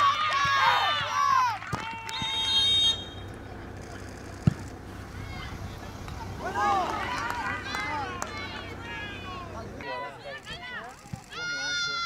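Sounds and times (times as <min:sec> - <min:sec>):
players shouting and calling: 0:00.0 - 0:12.0.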